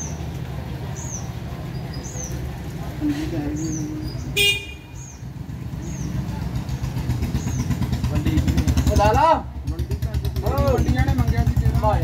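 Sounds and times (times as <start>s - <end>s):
motorcycle engine running: 0.0s - 12.0s
bird chirps: 0.9s - 2.5s, 3.5s - 8.0s.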